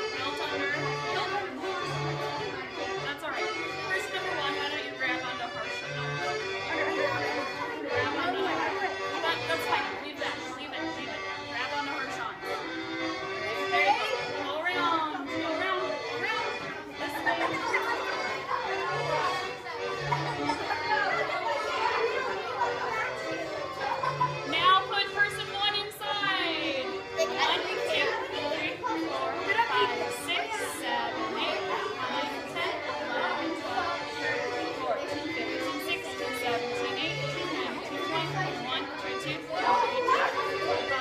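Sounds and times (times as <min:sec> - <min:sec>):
background music: 0:00.0 - 0:41.0
children's voices chattering: 0:00.0 - 0:41.0
dance music with held notes: 0:14.4 - 0:29.4.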